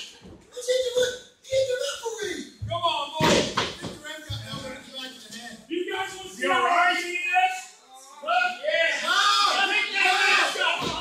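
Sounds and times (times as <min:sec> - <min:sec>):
voices shouting: 0:06.0 - 0:11.0.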